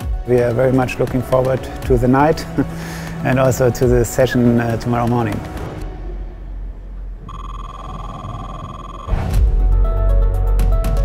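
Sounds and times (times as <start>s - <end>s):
electronic beep tone: 7.2s - 9.3s.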